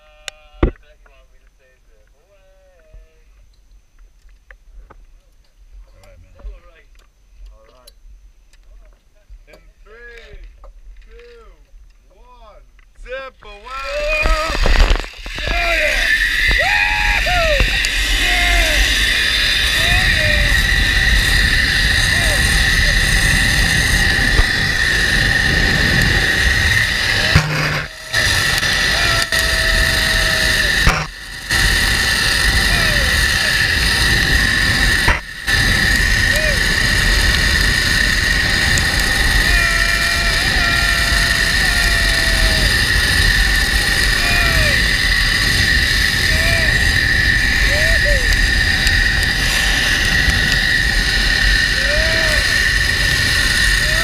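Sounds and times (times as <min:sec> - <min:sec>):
zipline pulleys whining on cable: 0:13.6 - 0:54.0
wind rushing over microphone: 0:13.9 - 0:54.0.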